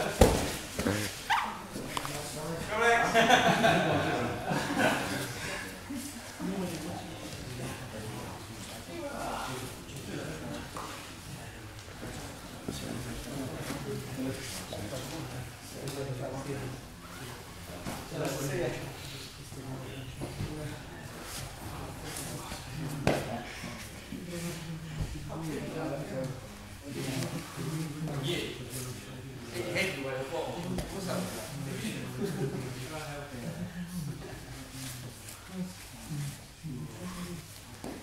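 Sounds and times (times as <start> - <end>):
bodies thudding on mats: 0.0 - 1.0.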